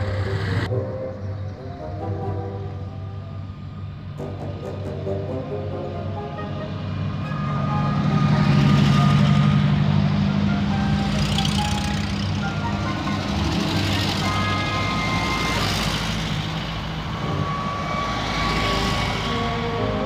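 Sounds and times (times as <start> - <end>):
music playing: 0.0 - 16.4, 17.0 - 20.0
car engines low rumble: 0.0 - 20.0.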